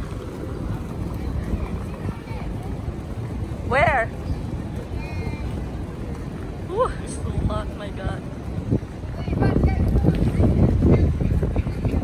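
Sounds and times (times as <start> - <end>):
faint voices: 0.0 - 12.0
wind rumbling on microphone: 0.0 - 12.0.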